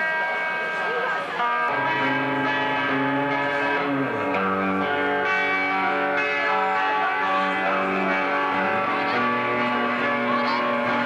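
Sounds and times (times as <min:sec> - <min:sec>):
rock band holding a ringing chord: 0:00.0 - 0:11.0.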